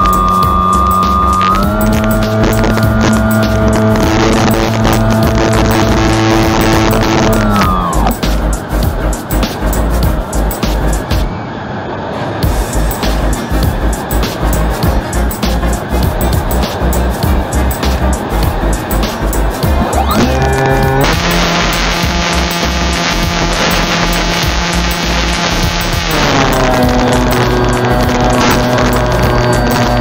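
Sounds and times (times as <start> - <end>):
electric motor whining: 0.0 - 8.6, 19.7 - 30.0
wind on microphone: 0.0 - 11.3, 12.4 - 30.0.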